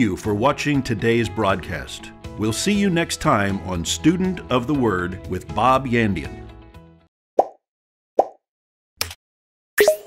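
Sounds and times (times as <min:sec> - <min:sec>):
pop sound effects: 0:07.4 - 0:07.6, 0:08.2 - 0:08.4, 0:09.8 - 0:10.0.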